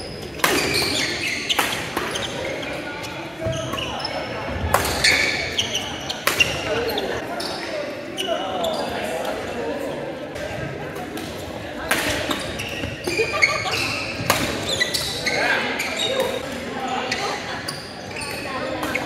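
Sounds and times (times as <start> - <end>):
sneakers squeaking on floor: 0.0 - 9.6, 12.0 - 19.0
voices in background: 0.0 - 19.0.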